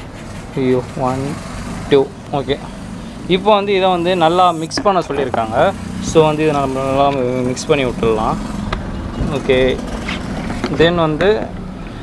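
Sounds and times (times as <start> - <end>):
person talking: 3.3 - 8.4.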